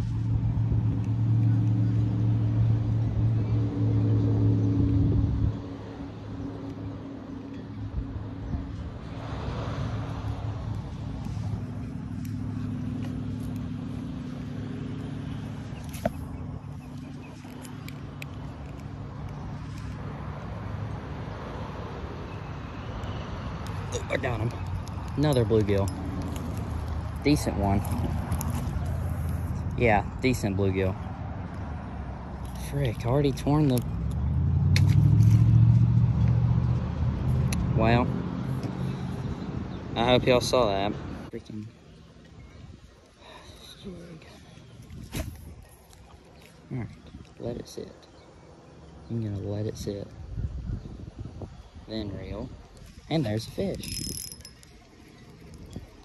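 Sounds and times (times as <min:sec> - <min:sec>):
engine humming: 0:00.0 - 0:50.2.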